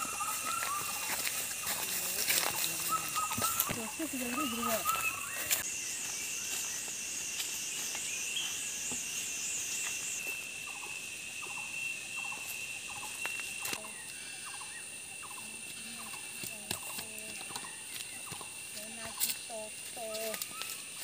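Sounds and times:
insects droning high-pitched: 0:00.0 - 0:21.0
pulsing insect trill: 0:00.0 - 0:21.0.

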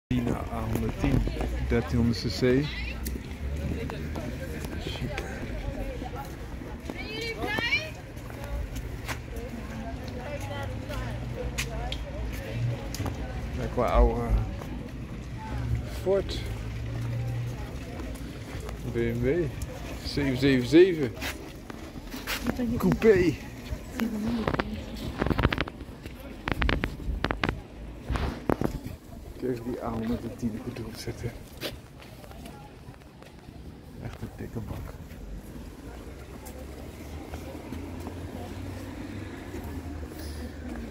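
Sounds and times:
faint voices: 0:00.1 - 0:40.9
people talking indistinctly: 0:00.1 - 0:40.9.

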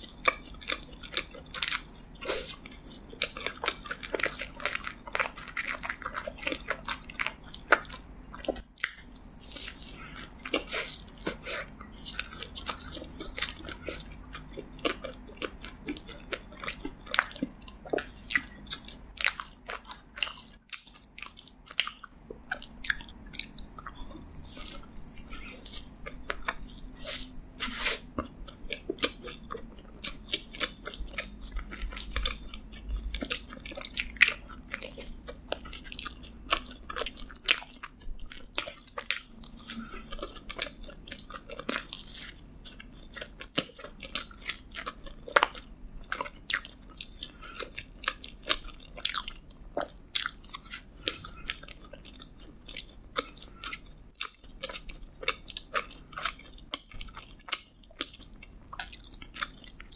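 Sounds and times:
close chewing and biting: 0:00.0 - 0:59.9.

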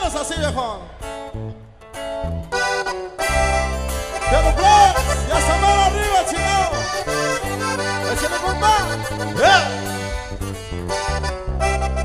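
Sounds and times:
low bass notes: 0:00.0 - 0:12.0
plucked guitar notes: 0:00.0 - 0:12.0.

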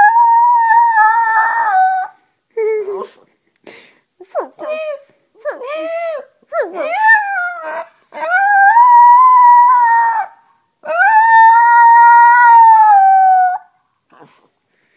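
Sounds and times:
small dog howling: 0:00.0 - 0:02.1, 0:06.8 - 0:13.7.

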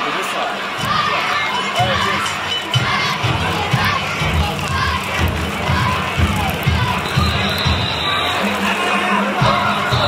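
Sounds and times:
crowd shouting together: 0:00.1 - 0:10.0.

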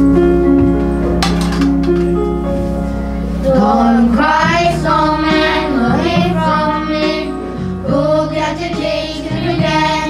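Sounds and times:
guitar-like instrumental music: 0:00.0 - 0:03.4.

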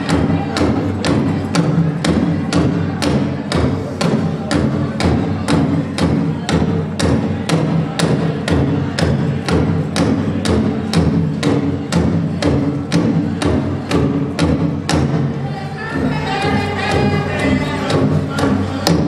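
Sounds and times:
big drum beating: 0:00.0 - 0:19.0
group singing: 0:15.4 - 0:19.0.

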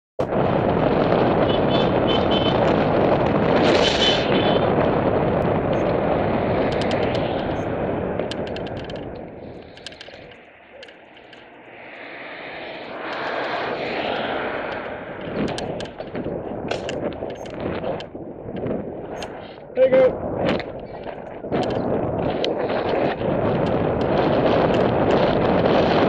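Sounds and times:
wind buffeting microphone: 0:00.2 - 0:26.0.

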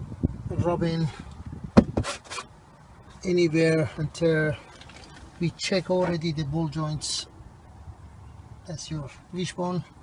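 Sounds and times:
brief scraping rustles: 0:01.8 - 0:02.5.

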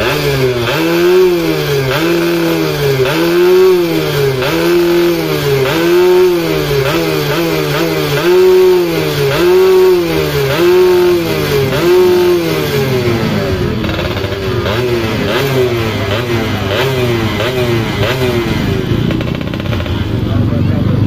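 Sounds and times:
dirt bike engine revving: 0:00.0 - 0:21.0.

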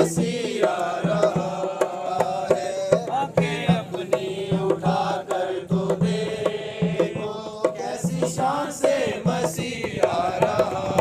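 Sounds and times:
group singing a hymn: 0:00.0 - 0:11.0
hand drum beating: 0:00.0 - 0:11.0.

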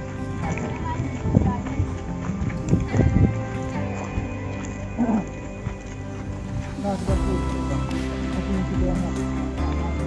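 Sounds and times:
background music with held tones: 0:00.0 - 0:10.0.

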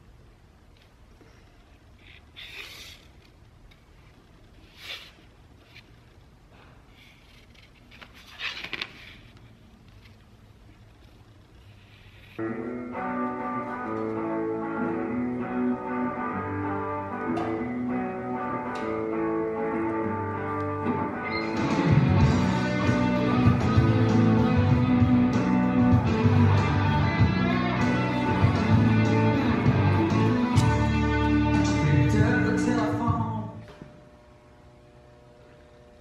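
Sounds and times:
guitar background music: 0:12.4 - 0:33.5.

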